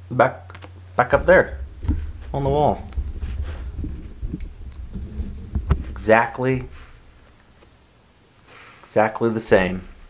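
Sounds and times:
dull thumps: 1.0s - 7.9s, 9.4s - 10.0s
sharp knock: 1.1s - 7.5s.

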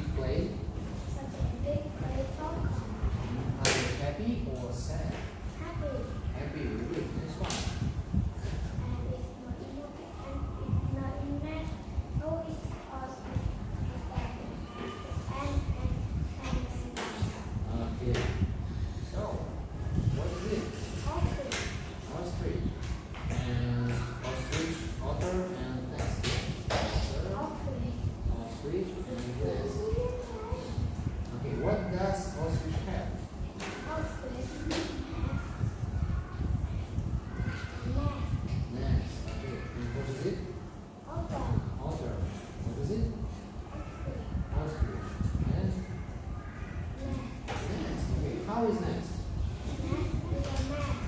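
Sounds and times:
voices talking indistinctly: 0.0s - 51.0s
faint speech: 4.6s - 51.0s.

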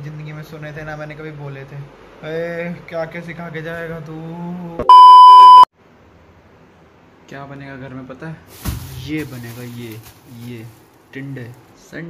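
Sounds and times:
censor bleep: 4.8s - 5.7s.

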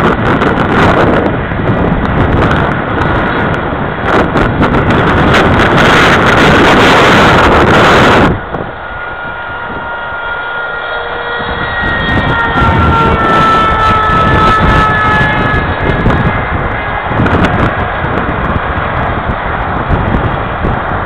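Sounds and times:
wind rumbling on microphone: 0.0s - 21.0s
model plane motor whine: 4.3s - 17.6s.

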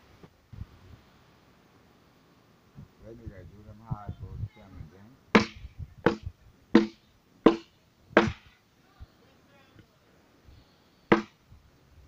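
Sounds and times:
hand tool chopping wooden log: 5.4s - 8.5s, 11.1s - 11.3s.

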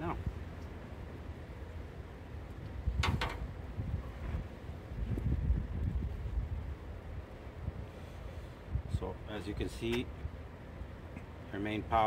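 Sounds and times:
wind rumbling on microphone: 2.4s - 9.3s.

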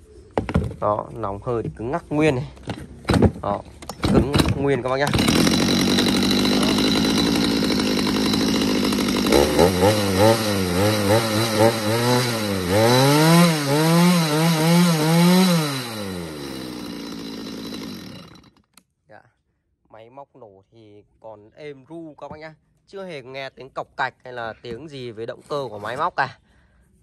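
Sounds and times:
chainsaw engine revving: 3.9s - 18.6s.

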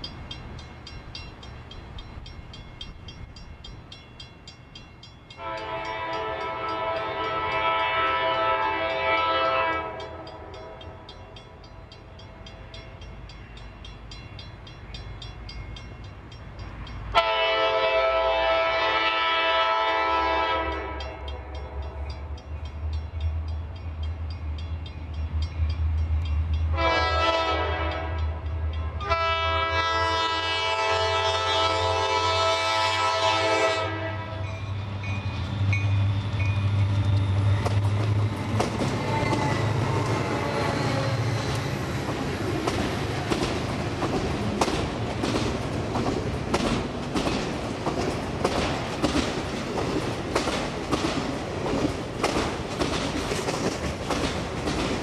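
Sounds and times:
locomotive air horn blasts: 5.4s - 11.0s, 17.1s - 21.5s, 26.7s - 34.6s.

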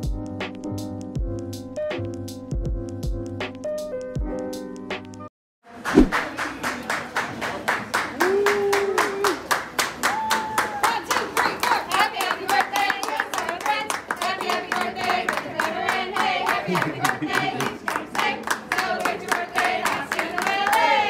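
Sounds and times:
group clapping in rhythm: 5.8s - 21.0s
group singing a birthday song: 12.0s - 21.0s.

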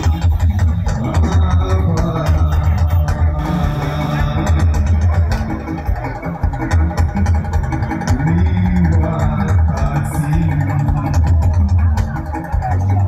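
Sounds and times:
person singing: 0.0s - 7.1s, 7.7s - 13.0s
gospel band playing loudly: 0.0s - 13.0s
pulsing bass guitar: 0.0s - 13.0s.

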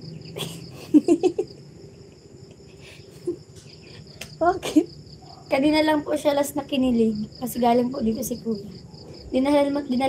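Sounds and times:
crickets chirring: 0.0s - 10.0s
women laughing: 0.4s - 1.7s, 2.8s - 3.5s.

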